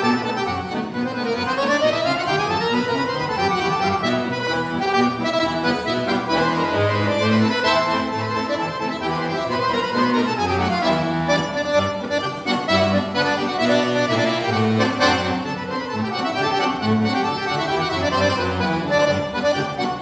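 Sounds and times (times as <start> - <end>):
piano accordion playing upbeat tune: 0.0 - 20.0.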